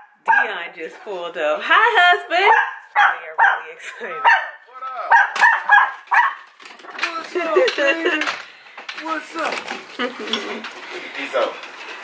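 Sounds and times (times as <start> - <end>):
dogs barking excitedly: 0.0 - 0.7, 2.3 - 8.4.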